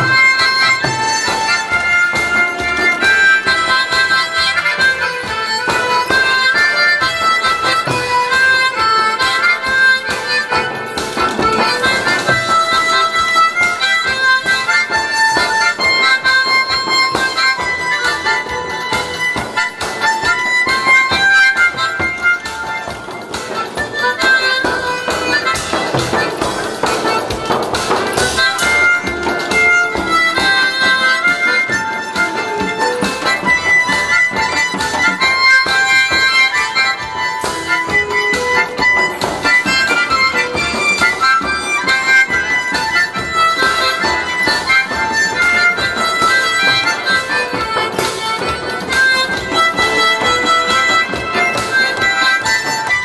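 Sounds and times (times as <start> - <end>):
harmonica melody: 0.0 - 53.0
recorded backing music: 0.0 - 53.0
steady drum beat: 0.0 - 53.0.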